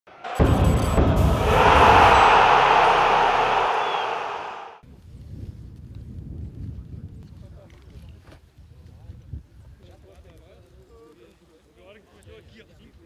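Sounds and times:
heavy hit: 0.1s - 4.8s
loud noisy swoosh: 0.1s - 4.8s.

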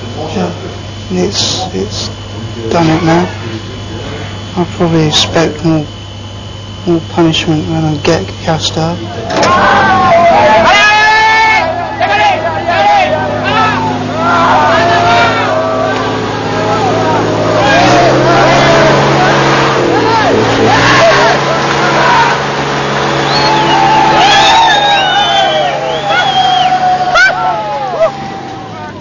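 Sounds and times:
tractor engine running: 0.0s - 29.0s
people shouting and calling: 8.8s - 29.0s.

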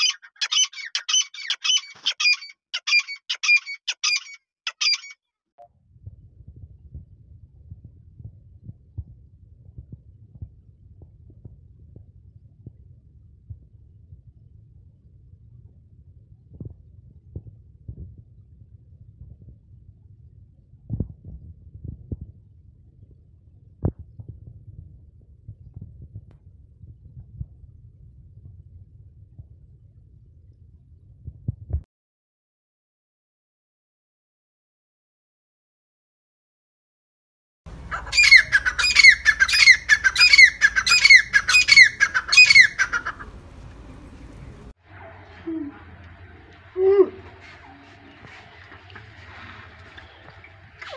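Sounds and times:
francolin calling shrilly: 0.0s - 5.2s, 37.9s - 43.2s
low steady rumble: 5.6s - 31.9s, 37.7s - 50.9s.

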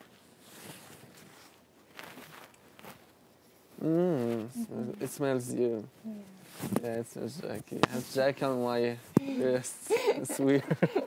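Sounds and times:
rustling of clothes and bedding: 0.0s - 9.6s.

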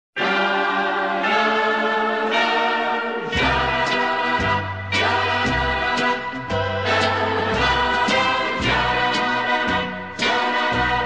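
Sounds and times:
sustained chords: 0.3s - 11.0s
low bass line: 3.4s - 11.0s.

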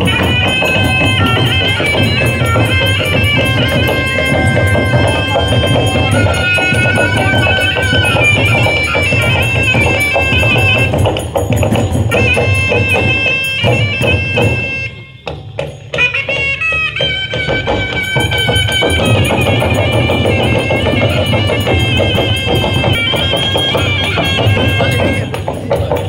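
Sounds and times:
drums: 0.0s - 26.0s
jingling metal percussion: 0.0s - 26.0s
reedy wind instrument melody: 0.0s - 26.0s.

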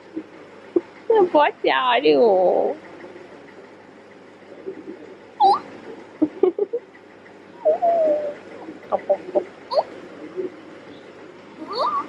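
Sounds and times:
child squeaking: 5.4s - 5.7s, 11.6s - 12.0s
child giggling: 6.2s - 6.8s, 11.6s - 12.0s.

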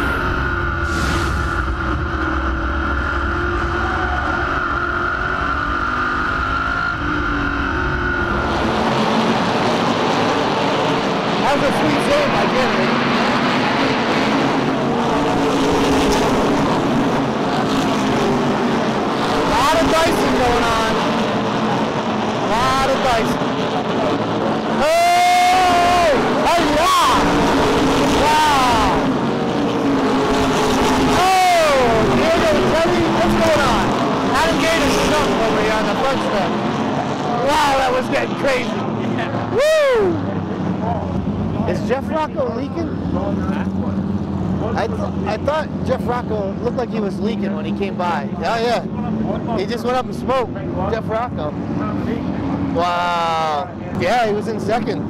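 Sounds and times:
race car engine running hard: 0.0s - 55.0s
race cars passing: 0.0s - 55.0s.

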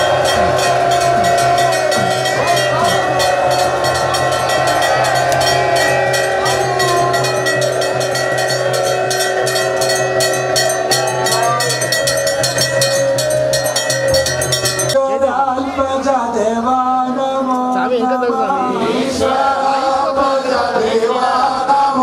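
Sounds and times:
bells and cymbals struck rapidly: 0.0s - 15.0s
crowd voices: 0.0s - 22.0s.

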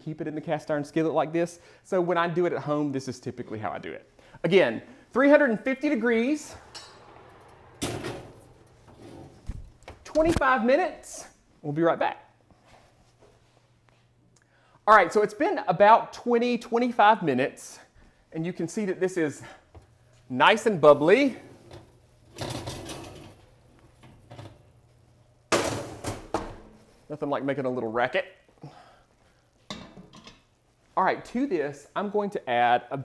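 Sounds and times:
skillet scraping metal rack: 6.5s - 9.4s
oven door thump: 6.6s - 10.0s.

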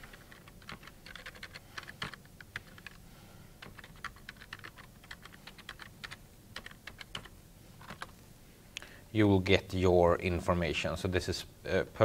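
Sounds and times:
computer keyboard typing: 0.0s - 3.0s, 3.6s - 8.1s.

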